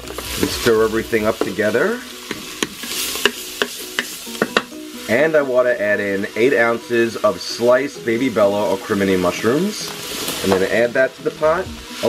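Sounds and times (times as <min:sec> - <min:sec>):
food sizzling in butter: 0:00.0 - 0:12.0
wooden spoon knocking against pot: 0:02.3 - 0:04.7.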